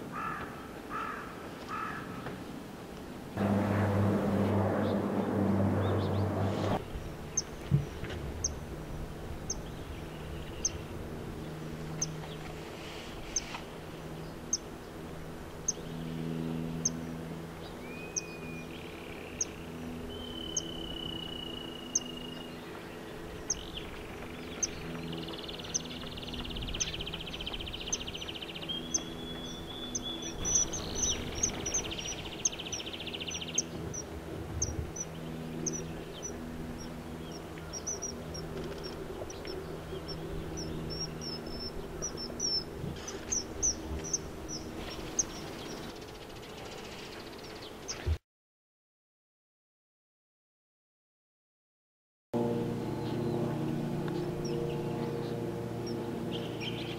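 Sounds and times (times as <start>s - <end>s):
kingfisher calling: 26.6s - 45.8s.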